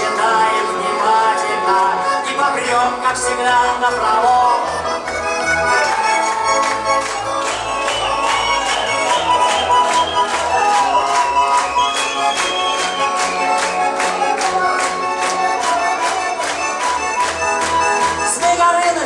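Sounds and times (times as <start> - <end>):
button accordion playing: 0.0 - 19.0.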